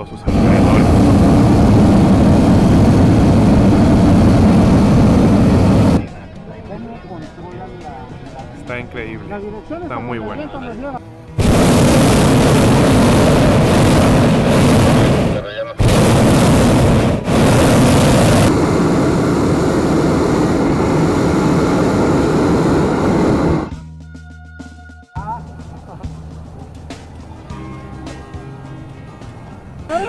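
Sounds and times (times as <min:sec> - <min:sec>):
propane burner firing: 0:00.0 - 0:06.0, 0:11.4 - 0:23.7.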